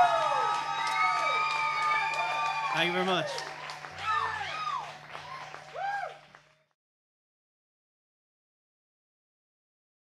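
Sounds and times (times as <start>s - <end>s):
audience cheering and whooping: 0.0s - 6.4s
scattered claps: 0.0s - 6.7s.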